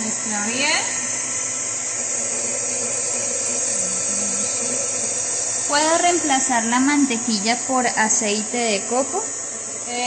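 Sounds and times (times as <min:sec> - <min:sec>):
stand mixer running: 0:00.0 - 0:10.0.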